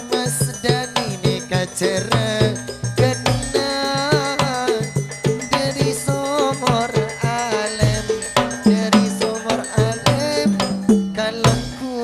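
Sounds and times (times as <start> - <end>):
frame drums and hand drums: 0.0 - 12.0.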